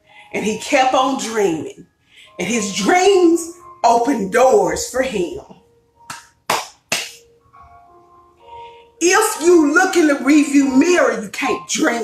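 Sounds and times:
quiet background music: 0:00.0 - 0:12.0
hand claps: 0:06.1 - 0:07.2.

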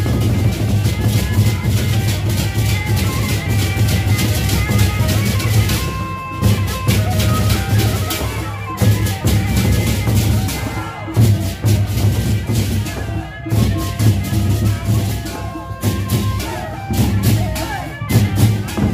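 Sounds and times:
barrel drums beaten with sticks: 0:00.0 - 0:18.9
metal cymbals clashing: 0:00.0 - 0:18.9.

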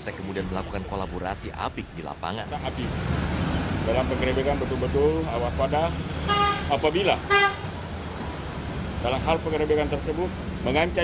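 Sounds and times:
traffic rumble: 0:00.0 - 0:11.0
vehicle horn toot: 0:06.3 - 0:07.7.

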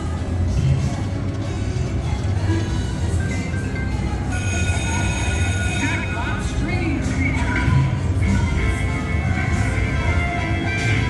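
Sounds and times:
slot machine electronic tones: 0:03.0 - 0:08.0.

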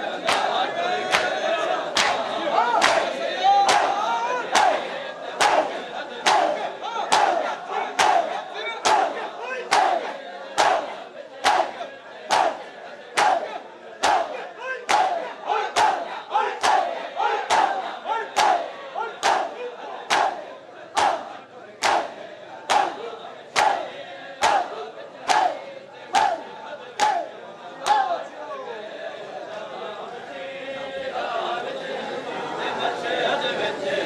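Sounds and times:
crowd slapping chests in unison: 0:00.0 - 0:28.3
crowd shouting together: 0:00.0 - 0:34.0.

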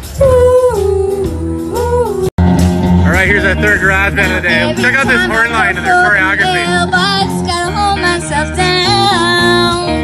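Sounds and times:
rock band bass: 0:00.0 - 0:10.0.

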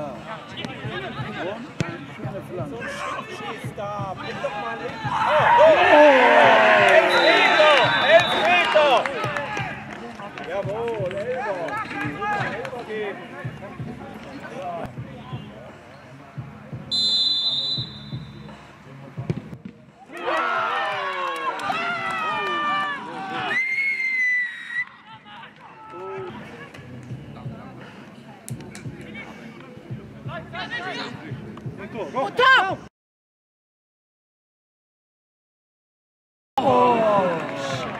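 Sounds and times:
players and spectators shouting: 0:02.4 - 0:09.9, 0:20.1 - 0:26.5, 0:36.6 - 0:37.9
referee's whistle: 0:07.0 - 0:08.6, 0:16.9 - 0:18.5.

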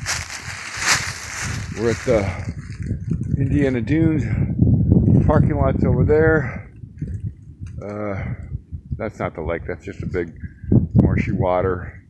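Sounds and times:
footsteps in dry leaves: 0:00.0 - 0:02.9
low rumble on microphone: 0:00.0 - 0:12.0
man speaking: 0:01.7 - 0:02.6, 0:03.4 - 0:04.4, 0:11.0 - 0:12.0.

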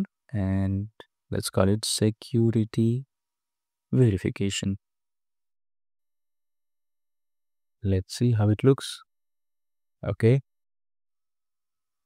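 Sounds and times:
man speaking: 0:00.0 - 0:03.0, 0:04.0 - 0:04.8, 0:07.8 - 0:09.0, 0:10.0 - 0:10.4.

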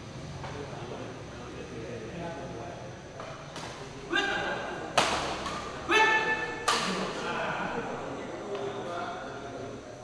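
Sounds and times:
person shouting: 0:04.1 - 0:04.5, 0:05.9 - 0:06.5
racket hitting shuttlecock: 0:04.9 - 0:07.1.

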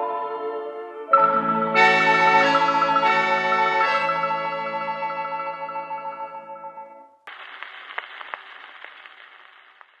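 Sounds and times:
record surface hiss: 0:07.2 - 0:10.0
record clicks and crackles: 0:07.3 - 0:10.0.

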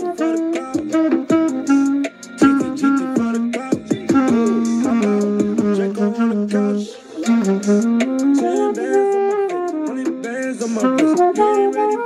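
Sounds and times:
hip-hop backing track drum beat: 0:00.0 - 0:12.0
saxophone melody: 0:00.0 - 0:12.0.

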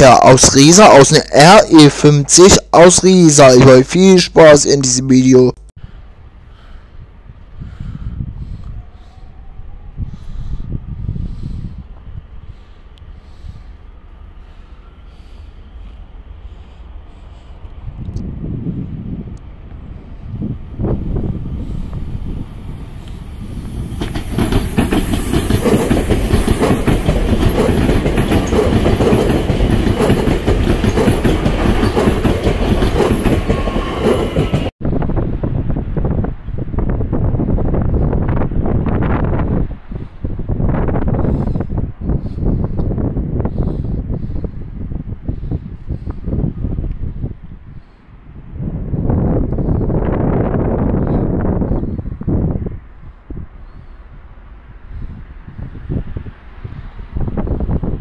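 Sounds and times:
rough gusting noise: 0:00.0 - 0:58.0
train rumbling past: 0:05.8 - 0:58.0.

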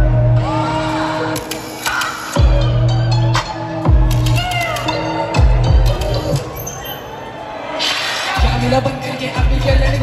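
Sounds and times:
heavy bass: 0:00.0 - 0:06.6, 0:08.3 - 0:10.0
hip-hop beat over sound system: 0:00.0 - 0:07.0, 0:07.7 - 0:10.0.

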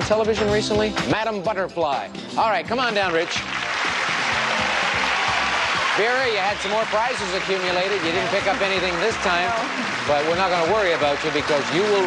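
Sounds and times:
game-show music: 0:00.0 - 0:12.0
audience applauding: 0:02.9 - 0:12.0.

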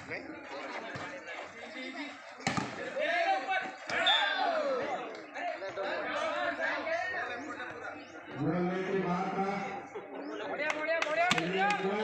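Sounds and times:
loud shouting voices: 0:02.8 - 0:05.1.

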